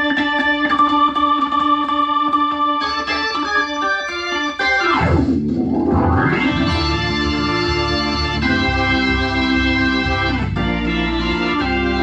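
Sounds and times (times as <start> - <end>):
filtered organ music: 0.0 - 12.0.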